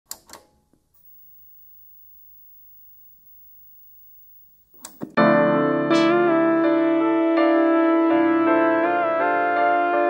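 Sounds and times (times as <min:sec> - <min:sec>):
low hiss: 0:00.8 - 0:05.2.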